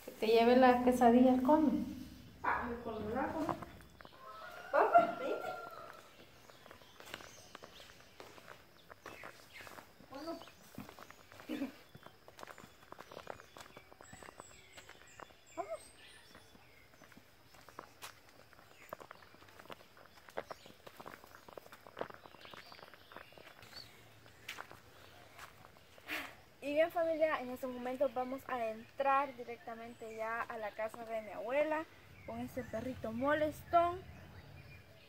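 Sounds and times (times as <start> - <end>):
footsteps on dirt path: 0.0 - 33.8.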